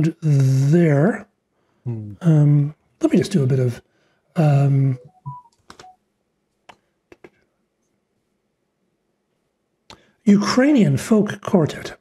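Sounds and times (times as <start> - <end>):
soft computer tones: 4.4 - 6.0
computer clicks: 5.1 - 6.0.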